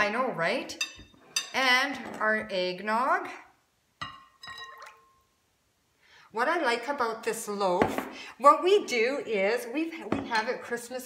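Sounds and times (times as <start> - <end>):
mug clinking glass bowl: 4.0 - 5.2
liquid pouring and dripping: 4.6 - 5.2.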